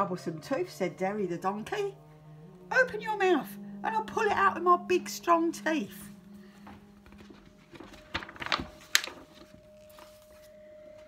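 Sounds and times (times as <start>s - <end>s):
rustling handling noise: 6.4s - 11.0s.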